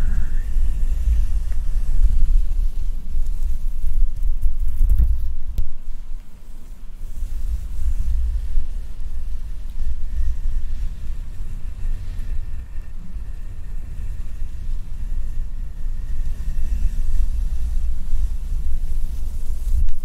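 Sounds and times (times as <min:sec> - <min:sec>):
gloved hand rubbing microphone grille: 0:00.0 - 0:20.0.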